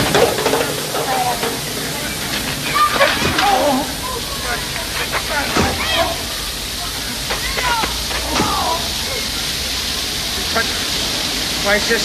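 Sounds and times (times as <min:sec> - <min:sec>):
water gushing from hydrant: 0:00.0 - 0:12.0
men shouting and grunting: 0:02.6 - 0:06.4, 0:07.1 - 0:09.0.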